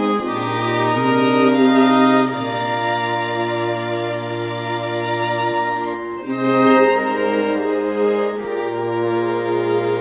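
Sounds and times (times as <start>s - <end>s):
fiddle and accordion folk tune: 0.0s - 10.0s.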